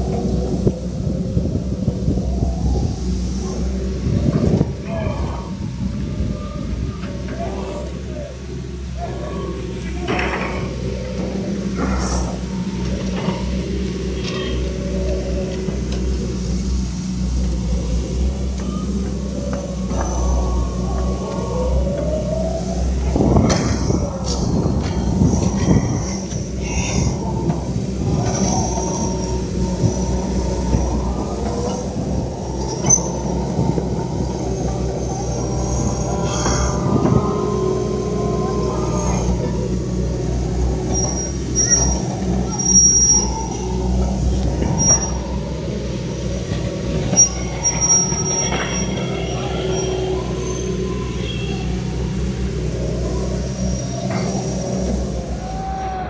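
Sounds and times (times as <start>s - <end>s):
crowd voices: 0.0s - 56.0s
excavator diesel engines droning: 0.0s - 56.0s.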